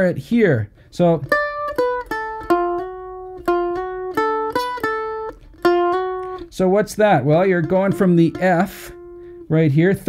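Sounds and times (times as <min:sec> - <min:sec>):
mandolin picking quick lick: 0:01.2 - 0:06.6.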